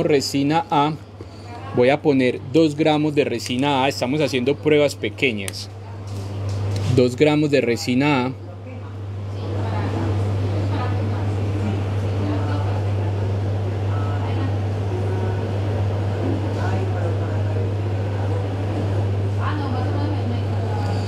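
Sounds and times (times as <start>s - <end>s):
faint indistinct voices: 0.0s - 21.0s
steady low hum: 0.0s - 21.0s.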